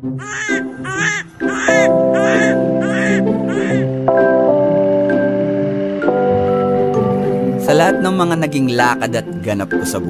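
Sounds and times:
background music with sustained chords: 0:00.0 - 0:10.0
bird cawing: 0:00.1 - 0:04.0.

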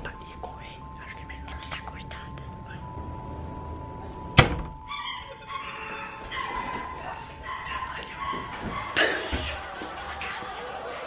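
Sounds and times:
dog barking and whining: 0:04.8 - 0:09.3.

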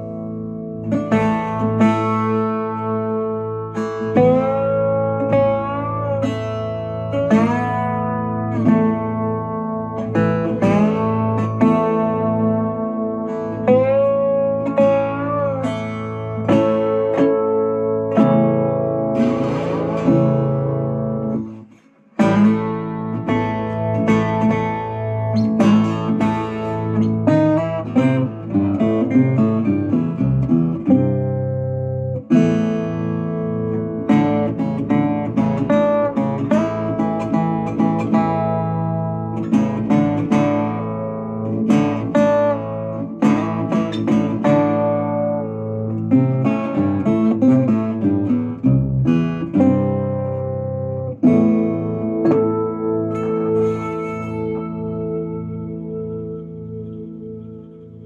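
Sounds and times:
slide resonator guitar: 0:00.0 - 0:58.0.

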